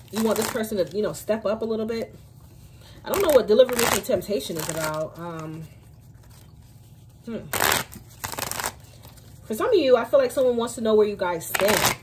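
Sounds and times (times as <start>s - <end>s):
cards being shuffled by hand: 0.0s - 1.1s, 3.1s - 9.5s, 11.5s - 12.0s.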